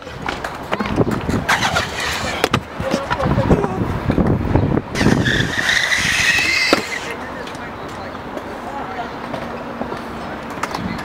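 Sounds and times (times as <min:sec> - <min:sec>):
scooter skidding on concrete: 0:00.0 - 0:03.5, 0:04.9 - 0:07.6.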